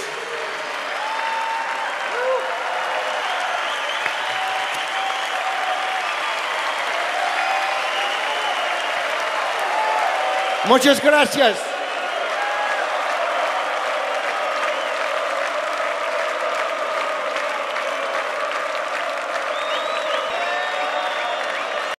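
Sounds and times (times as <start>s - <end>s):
audience applauding: 0.0s - 22.0s.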